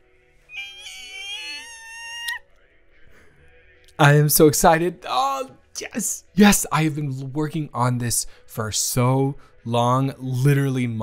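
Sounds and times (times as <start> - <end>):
soft background music: 0.0 - 11.0
man squealing: 0.5 - 2.4.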